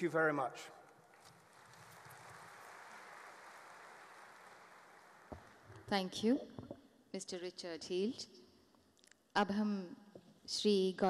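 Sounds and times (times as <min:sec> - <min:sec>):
faint audience applause: 0:01.1 - 0:05.9.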